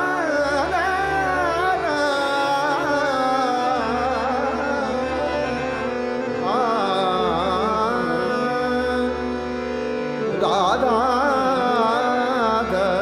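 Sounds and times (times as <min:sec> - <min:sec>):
man singing: 0:00.0 - 0:13.0
tanpura drone: 0:00.0 - 0:13.0.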